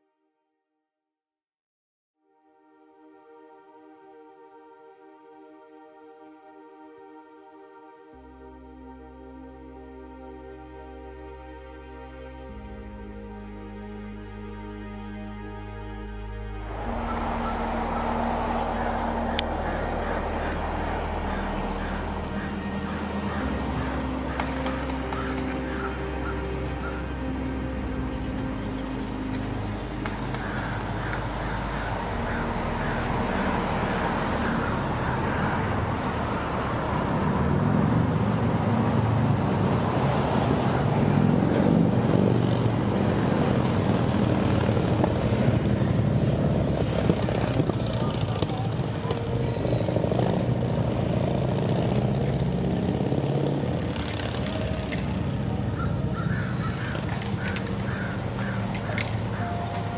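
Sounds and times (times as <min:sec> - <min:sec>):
vehicle engine running: 0:16.5 - 0:59.9.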